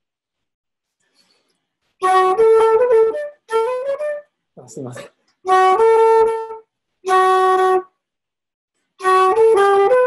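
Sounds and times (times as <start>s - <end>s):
wooden flute playing a jig: 1.1s - 4.7s, 5.4s - 8.0s, 8.8s - 10.0s.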